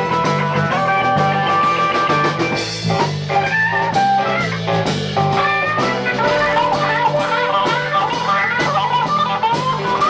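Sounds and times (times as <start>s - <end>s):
bass line: 0.0s - 10.0s
drums: 0.0s - 10.0s
electric guitar lead: 0.0s - 10.0s.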